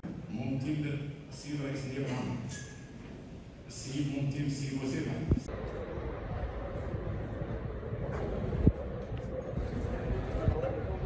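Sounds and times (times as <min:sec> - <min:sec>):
steady low rumble: 0:05.1 - 0:11.0.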